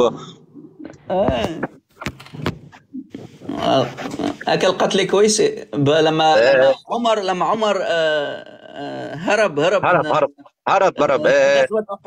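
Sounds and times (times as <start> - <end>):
man speaking over a call: 5.8 - 7.8, 9.5 - 12.0.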